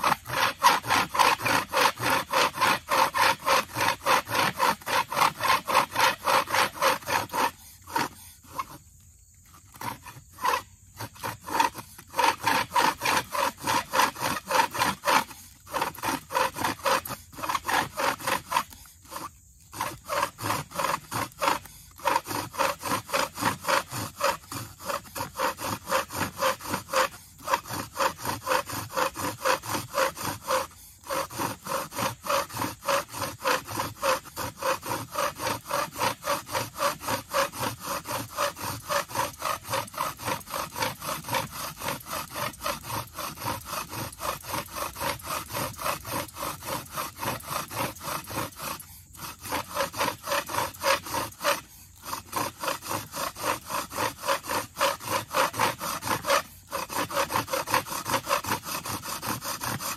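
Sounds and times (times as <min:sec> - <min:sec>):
bow drill spindle scraping: 0:00.0 - 0:59.9.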